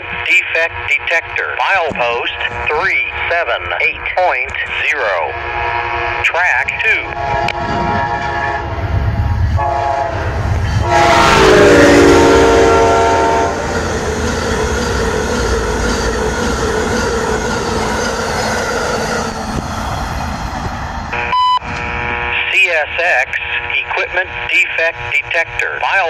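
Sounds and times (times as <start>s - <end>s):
train rushing past: 1.8s - 22.2s
train horn blasts: 5.2s - 6.2s, 7.0s - 13.8s.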